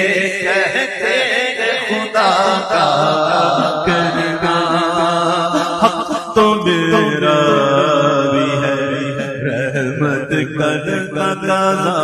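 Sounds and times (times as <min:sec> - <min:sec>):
man singing unaccompanied: 0:00.0 - 0:12.0.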